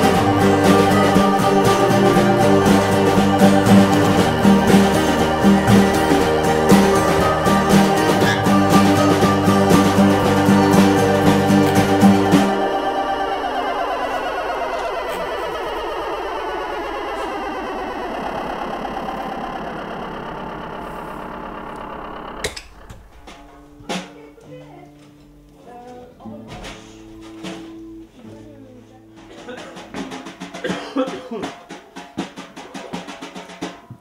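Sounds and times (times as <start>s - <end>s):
wavering electronic drone: 0.0s - 23.6s
low amplifier hum: 0.0s - 29.5s.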